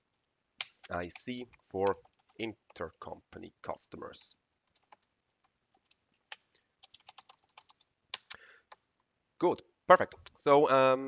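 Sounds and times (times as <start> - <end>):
typing on computer keyboard: 0.6 - 2.8, 4.7 - 5.1, 5.8 - 8.8.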